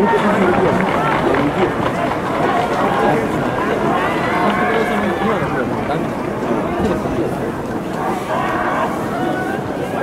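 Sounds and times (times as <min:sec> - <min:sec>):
voices: 0:00.0 - 0:10.0
long drawn-out shout: 0:02.3 - 0:05.4, 0:07.9 - 0:10.0.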